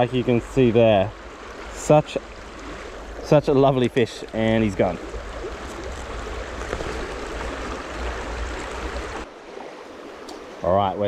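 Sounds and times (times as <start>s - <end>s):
stream rushing over stones: 0.0s - 10.8s.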